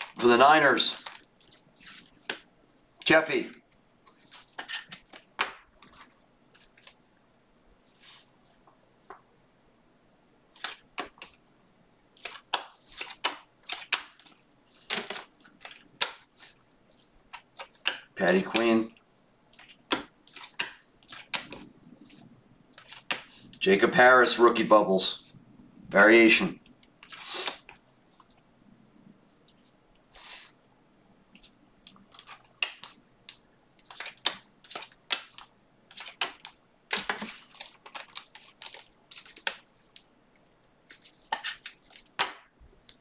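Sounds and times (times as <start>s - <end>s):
cards flipped by hand: 4.1s - 7.0s, 10.6s - 11.4s, 12.2s - 16.6s, 19.5s - 22.2s, 22.8s - 23.4s, 31.4s - 40.1s, 40.9s - 42.4s.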